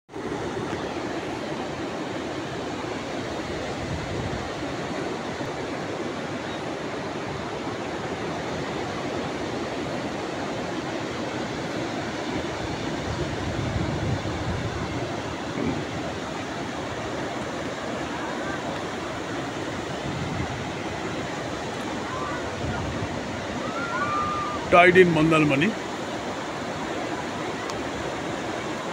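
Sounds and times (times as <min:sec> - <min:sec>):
surf: 0:00.1 - 0:28.9
wind: 0:00.1 - 0:28.9
wind buffeting microphone: 0:03.4 - 0:05.7, 0:11.5 - 0:28.9.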